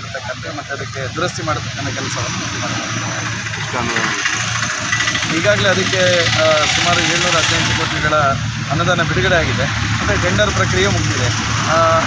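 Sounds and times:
vehicle engine running: 0:00.0 - 0:12.0.

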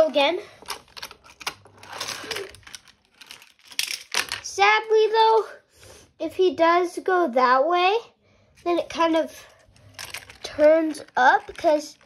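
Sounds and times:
toy car wheels rattling on track: 0:01.0 - 0:04.5, 0:10.0 - 0:12.0.

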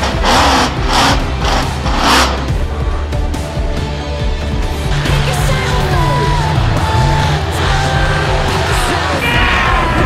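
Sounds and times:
music with heavy beat: 0:00.0 - 0:10.0
steady bass: 0:00.0 - 0:10.0.

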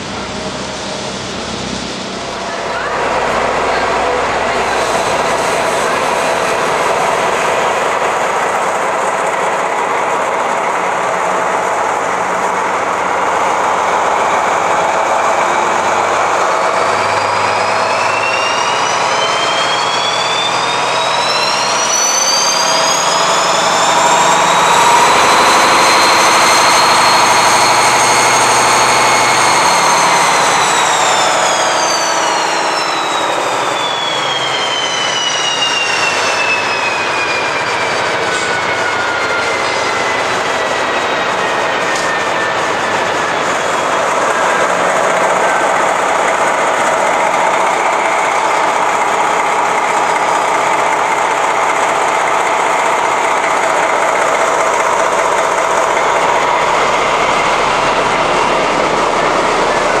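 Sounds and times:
diesel locomotive running noise: 0:00.0 - 1:00.0
high whine winding down: 0:00.0 - 1:00.0.

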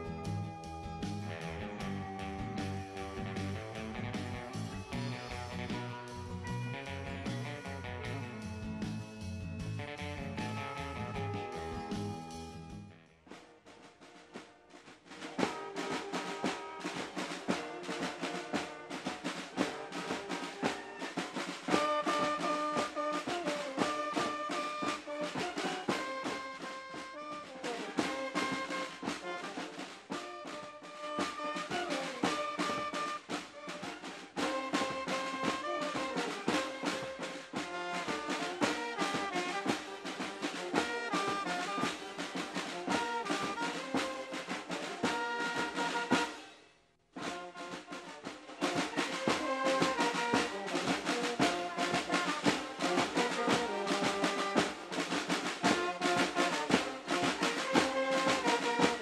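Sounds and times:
snare and bass drums: 0:00.0 - 0:46.5, 0:47.1 - 0:59.0
brass melody: 0:00.0 - 0:59.0.

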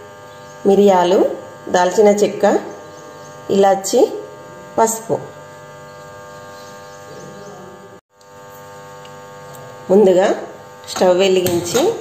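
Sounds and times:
electrical hum with low buzz: 0:00.0 - 0:12.0.

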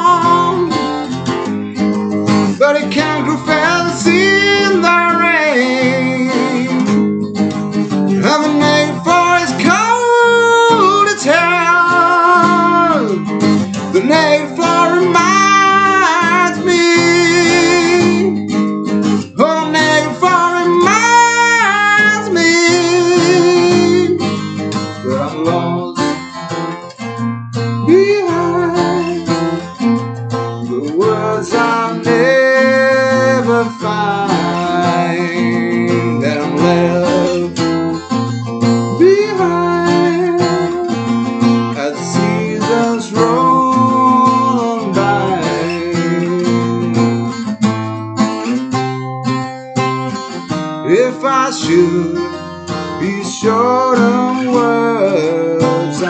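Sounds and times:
man singing: 0:00.0 - 0:47.4, 0:50.8 - 0:56.0
acoustic guitar: 0:00.0 - 0:56.0.

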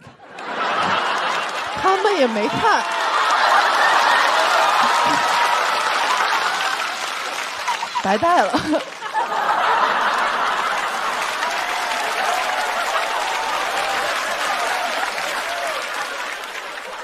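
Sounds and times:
audience applauding: 0:00.0 - 0:17.0
audience laughter: 0:00.0 - 0:17.0.

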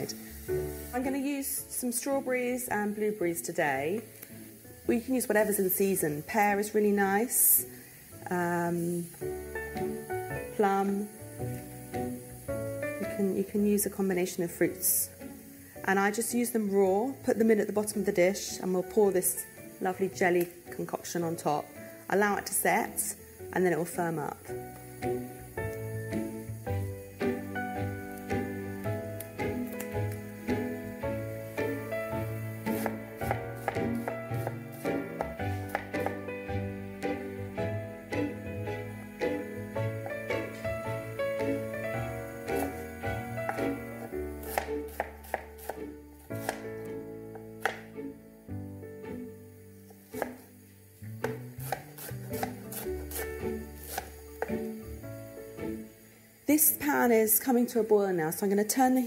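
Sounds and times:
instrumental music: 0:00.0 - 0:56.6.

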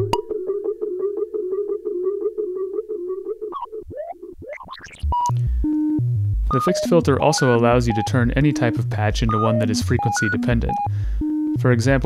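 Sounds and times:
synthesizer drone with ticking repeats: 0:00.0 - 0:12.0.

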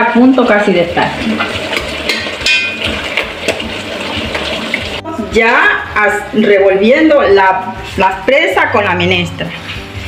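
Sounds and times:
pots simmering: 0:00.0 - 0:08.4
gas stove hissing: 0:01.0 - 0:05.6
spatula knocking in metal pot: 0:01.4 - 0:03.7.

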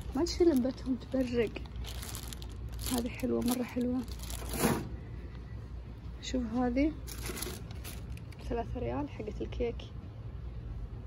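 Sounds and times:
plastic packaging rustling: 0:00.0 - 0:04.9, 0:07.0 - 0:08.5
steady low hum: 0:00.0 - 0:11.0.

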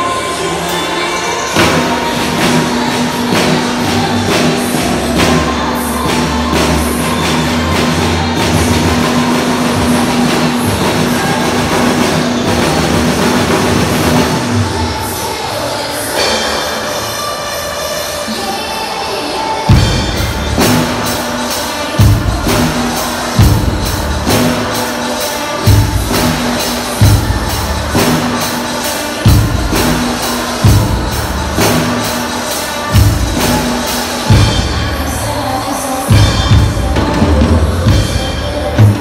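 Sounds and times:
acoustic drum kit playing: 0:00.0 - 0:14.9, 0:19.7 - 0:39.0
loud backing track music: 0:00.0 - 0:39.0.

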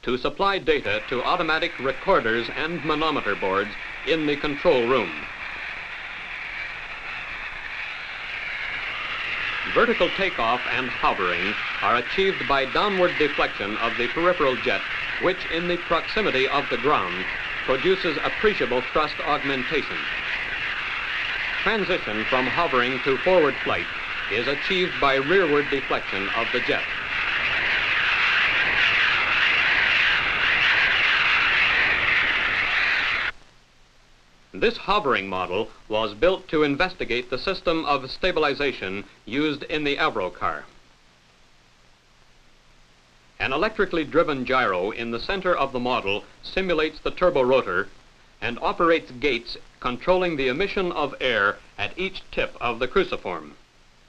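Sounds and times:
high-pressure air hissing: 0:00.5 - 0:33.4.

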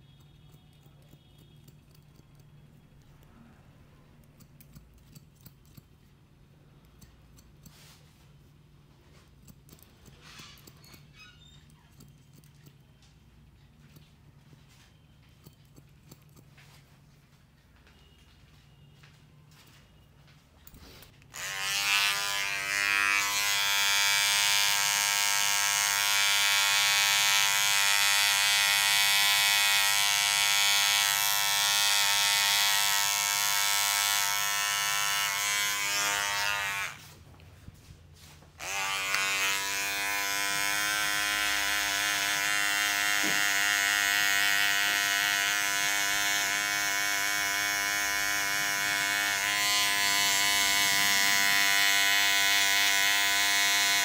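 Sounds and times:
electric beard trimmer humming: 0:21.3 - 0:37.1, 0:38.6 - 0:54.0.

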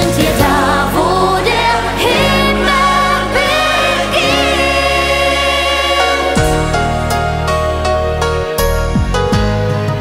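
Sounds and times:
pop song with sung vocals: 0:00.0 - 0:07.2.

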